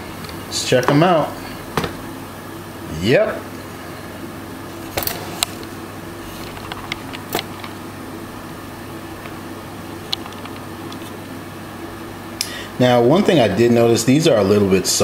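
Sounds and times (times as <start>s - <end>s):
air fryer fan humming: 0.0s - 15.0s.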